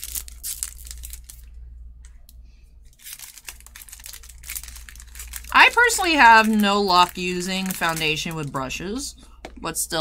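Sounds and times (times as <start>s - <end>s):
plastic packaging crinkling: 0.0s - 1.6s, 2.8s - 9.6s.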